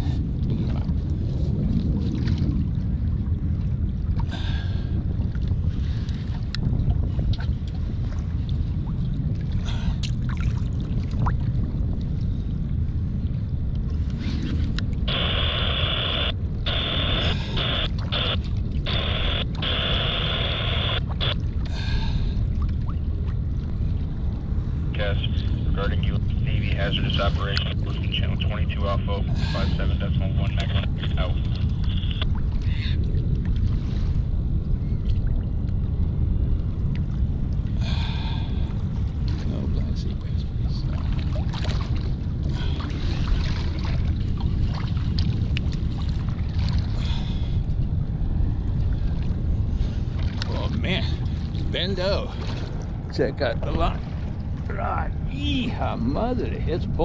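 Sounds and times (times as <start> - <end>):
wind rumble on microphone: 0.0 - 57.0
muffled thin mid-pitched sound: 15.0 - 21.4, 24.9 - 32.3.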